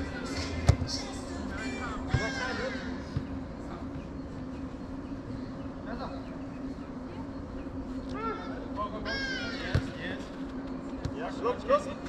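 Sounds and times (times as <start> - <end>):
soccer ball kick: 0.6 - 0.9, 9.7 - 10.0
distant players shouting: 1.6 - 3.3, 8.1 - 10.0.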